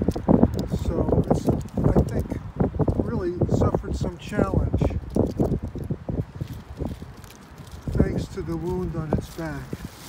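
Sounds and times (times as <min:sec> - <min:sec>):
wind buffeting microphone: 0:00.0 - 0:10.0
faint rustle: 0:04.8 - 0:10.0.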